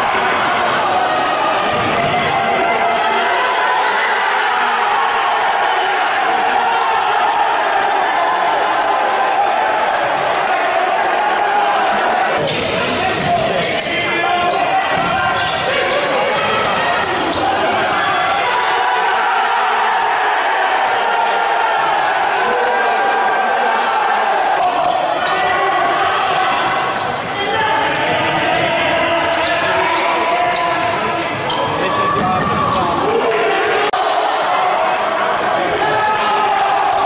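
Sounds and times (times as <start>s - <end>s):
voices echoing in a hall: 0.0s - 37.0s.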